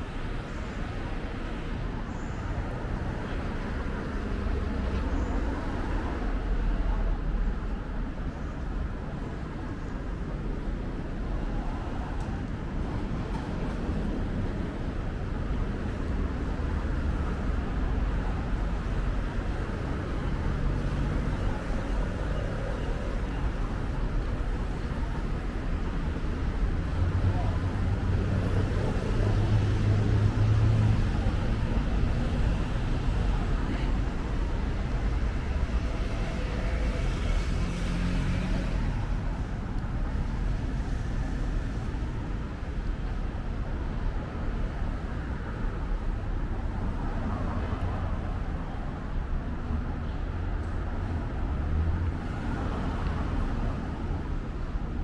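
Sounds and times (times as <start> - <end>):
low rumble of car traffic: 0.0 - 55.0.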